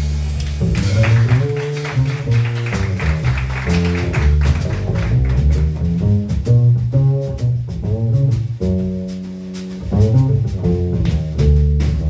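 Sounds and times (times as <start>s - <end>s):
upright bass notes: 0.0s - 12.0s.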